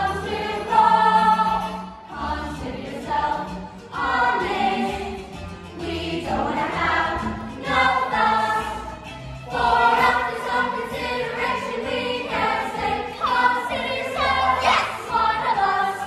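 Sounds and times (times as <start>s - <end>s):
ensemble singing together: 0.0s - 16.0s
musical accompaniment: 0.0s - 16.0s.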